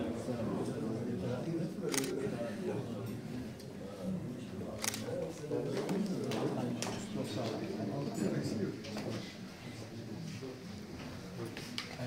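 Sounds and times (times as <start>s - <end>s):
murmur of people talking: 0.0s - 12.0s
camera shutter click: 1.9s - 2.1s, 4.8s - 5.1s.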